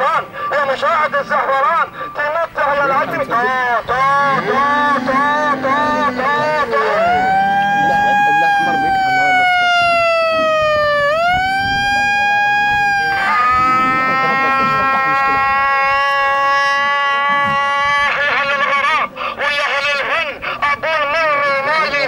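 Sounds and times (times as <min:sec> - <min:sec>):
megaphone long tones: 0:00.0 - 0:22.0.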